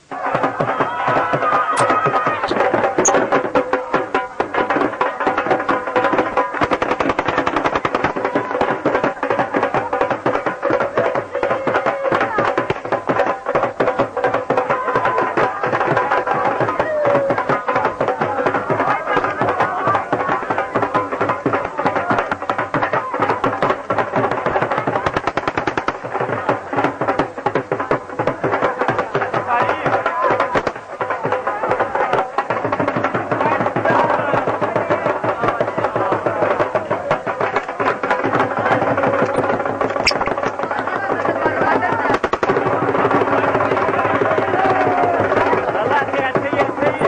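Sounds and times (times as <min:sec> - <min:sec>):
many voices: 0:00.0 - 0:47.0
rapid drumming: 0:00.0 - 0:47.0.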